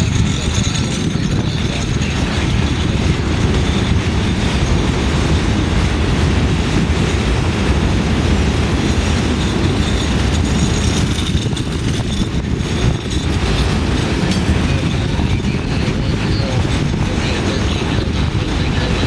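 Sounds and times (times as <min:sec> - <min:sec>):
train wheels rumbling on rails: 0:00.0 - 0:19.0.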